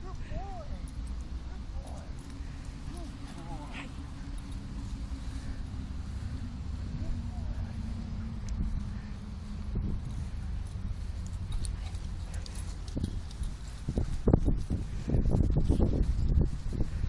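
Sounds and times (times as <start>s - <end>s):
wind rumble on microphone: 0.0s - 17.0s.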